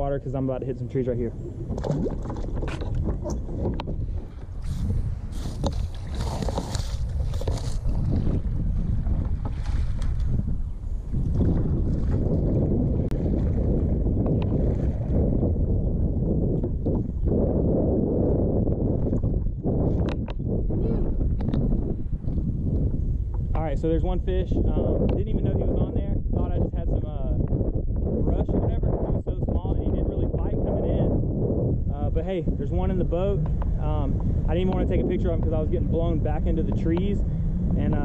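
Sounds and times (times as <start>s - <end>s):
wind rumbling on microphone: 0.0s - 38.0s
paddle splashing in water: 1.6s - 15.2s.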